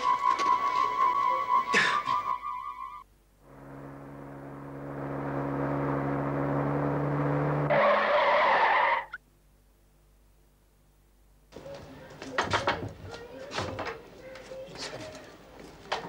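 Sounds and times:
synthesizer drone swell: 2.9s - 8.0s.

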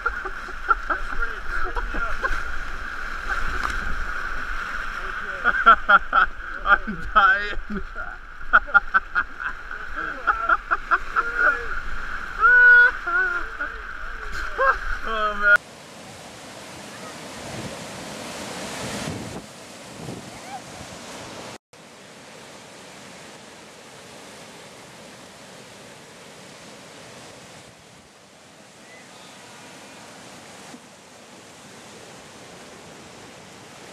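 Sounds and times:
river rapids rushing: 0.0s - 33.9s.

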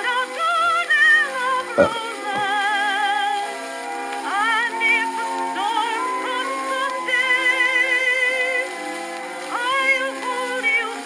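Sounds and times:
woman singing a ballad: 0.0s - 8.8s, 9.4s - 11.0s.

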